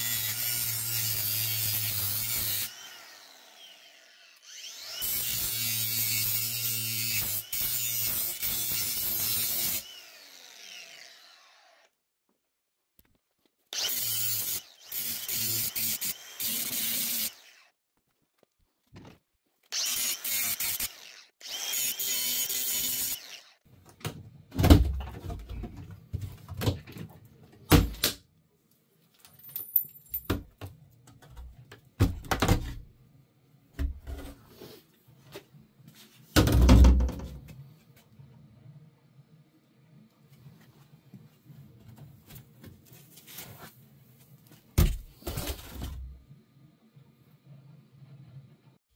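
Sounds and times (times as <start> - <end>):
angle grinder cutting steel: 0.0 - 11.9, 13.8 - 17.7, 19.7 - 23.6.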